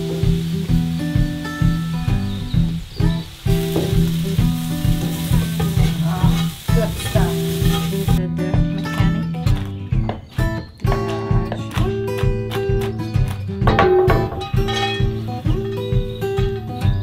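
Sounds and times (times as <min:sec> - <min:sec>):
peas sizzling in a wok: 0:00.0 - 0:08.2, 0:13.7 - 0:17.0
plucked background music: 0:00.0 - 0:17.0.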